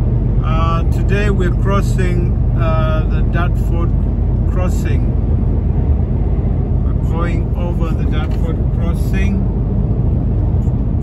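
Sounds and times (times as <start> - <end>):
lorry engine and road noise: 0.0 - 11.0.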